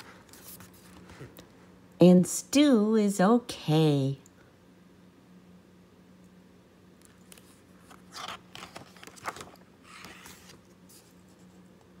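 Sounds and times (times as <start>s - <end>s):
paper pages rustling: 0.0s - 1.4s, 7.1s - 11.7s
low steady hum: 0.0s - 12.0s.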